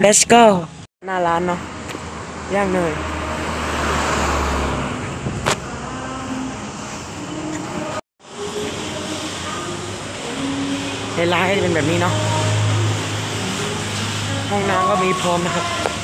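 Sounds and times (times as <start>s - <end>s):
low engine hum: 1.5s - 8.6s, 10.2s - 14.8s.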